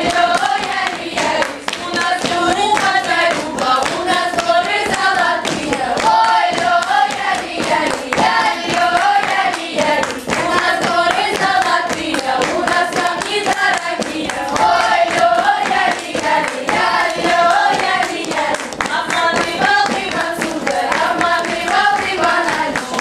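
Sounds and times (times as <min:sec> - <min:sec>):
children singing folk song: 0:00.0 - 0:23.0
sharp hand claps: 0:00.0 - 0:23.0.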